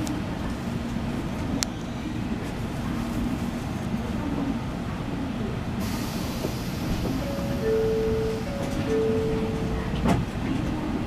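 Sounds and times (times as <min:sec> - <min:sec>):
low rumble inside train car: 0:00.0 - 0:11.0
hiss: 0:05.8 - 0:07.6
two-note chime: 0:07.2 - 0:09.8.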